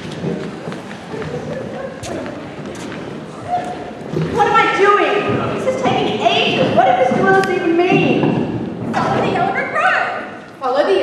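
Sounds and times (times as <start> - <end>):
footsteps on wooden floor: 0.0 - 9.6
chairs knocking on wooden floor: 4.1 - 9.6.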